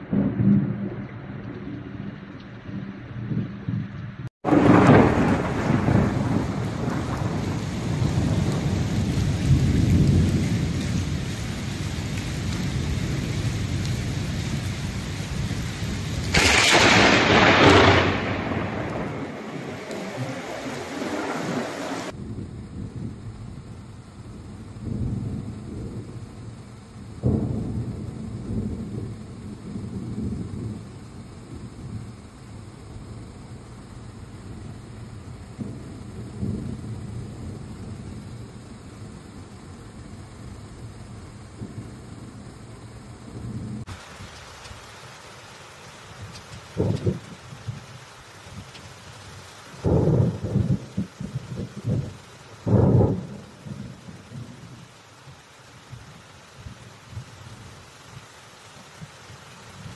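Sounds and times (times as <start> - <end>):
thunder rolling: 0.0 - 44.0, 46.7 - 47.8, 49.8 - 54.9
heavy rain: 0.0 - 59.9.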